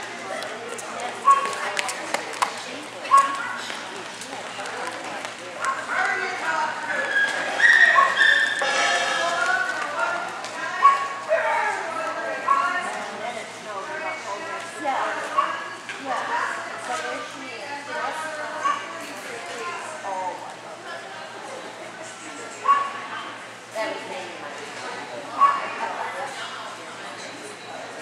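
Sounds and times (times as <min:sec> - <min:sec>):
murmur of voices: 0:00.0 - 0:28.0
dogs barking: 0:07.6 - 0:08.6, 0:15.3 - 0:15.7, 0:22.6 - 0:23.0.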